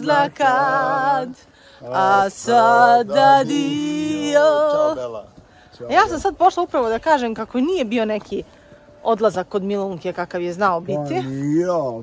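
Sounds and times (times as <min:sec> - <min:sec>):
people singing unaccompanied: 0:00.0 - 0:07.1.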